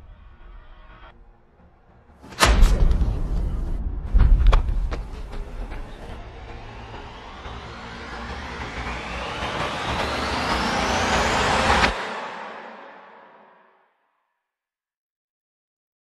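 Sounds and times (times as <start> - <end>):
sharp hits: 2.2 - 13.6
rising whoosh: 2.4 - 13.6.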